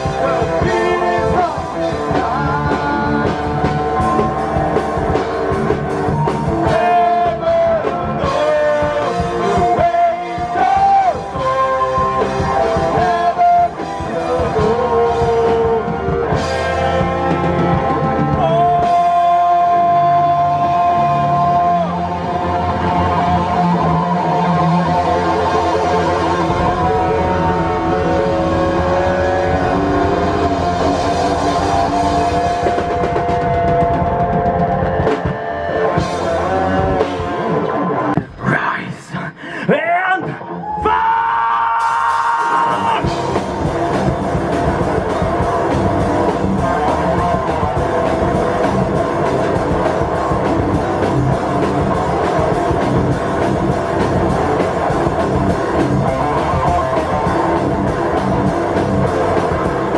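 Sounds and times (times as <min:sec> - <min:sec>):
rock band playing: 0:00.0 - 0:38.4, 0:40.2 - 0:59.9
distorted electric guitars: 0:00.0 - 0:38.6, 0:40.2 - 0:59.9
bass: 0:00.0 - 0:59.9
drums: 0:00.0 - 0:59.9.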